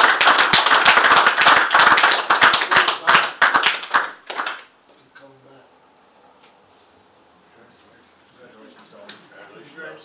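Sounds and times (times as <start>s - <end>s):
people applauding: 0.0s - 4.7s.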